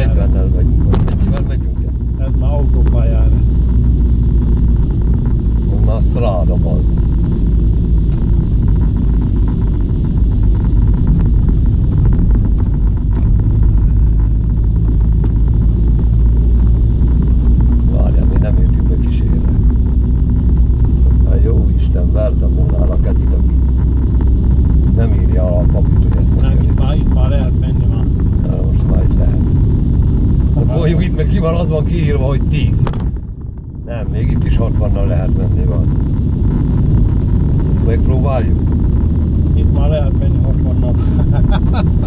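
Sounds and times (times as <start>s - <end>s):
car engine and tyres rumbling: 0.0s - 42.0s.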